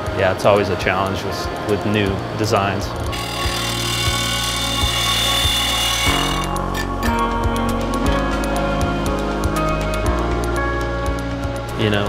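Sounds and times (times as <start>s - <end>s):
milling machine cutting metal: 3.1s - 7.1s.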